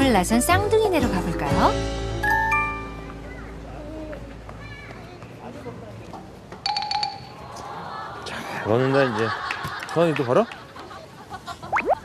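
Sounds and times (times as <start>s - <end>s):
faint voices outdoors: 2.8s - 6.6s, 7.2s - 11.8s.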